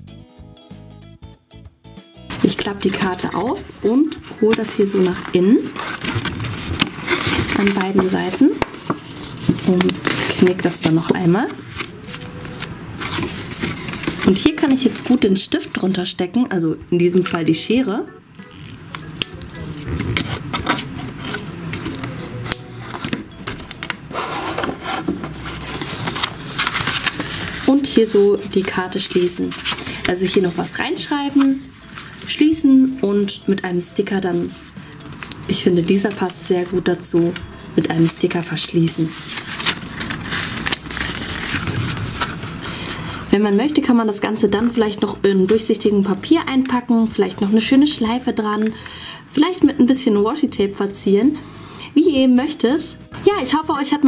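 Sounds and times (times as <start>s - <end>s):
paper rustling: 2.3s - 16.0s, 18.4s - 43.2s
sticker rubbed on: 24.1s - 27.6s.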